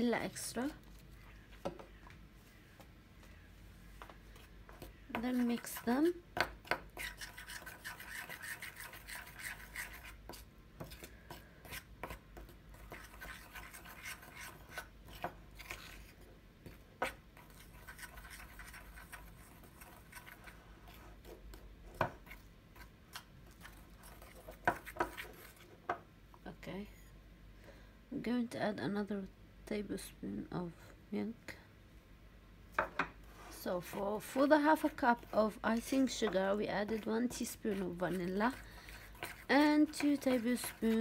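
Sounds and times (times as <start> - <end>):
spoon scraping icing in bowl: 4.7 - 6.1, 6.7 - 25.7, 33.4 - 41.0.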